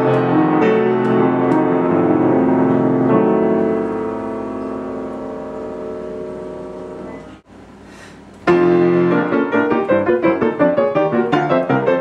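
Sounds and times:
grand piano chord ringing: 0.0 - 7.5, 8.5 - 12.0.

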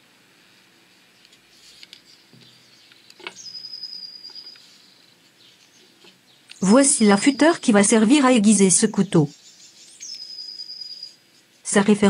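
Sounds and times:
bird whistle-like call: 3.4 - 4.6, 9.8 - 11.2.

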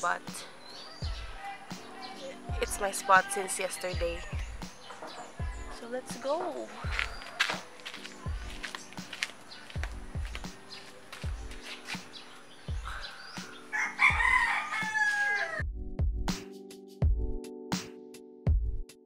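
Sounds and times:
background music with slow beat: 0.0 - 19.0
rooster crowing: 3.2 - 5.2, 13.0 - 15.6.

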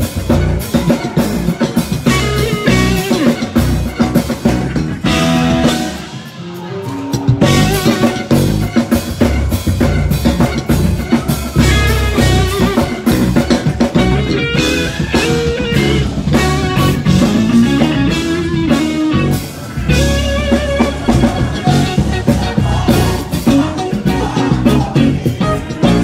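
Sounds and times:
live gospel band playing: 0.0 - 26.0.

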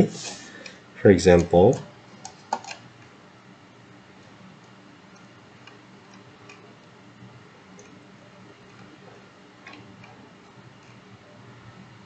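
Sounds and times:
low steady hum: 0.0 - 12.0
computer mouse clicks: 4.6 - 6.9, 7.7 - 8.0, 9.6 - 11.0.

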